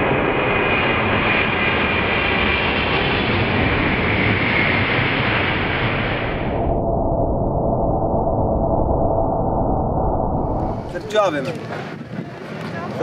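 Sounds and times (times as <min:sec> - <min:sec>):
airliner jet engines roaring: 0:00.0 - 0:07.3, 0:10.2 - 0:13.0
high engine whine: 0:00.0 - 0:13.0.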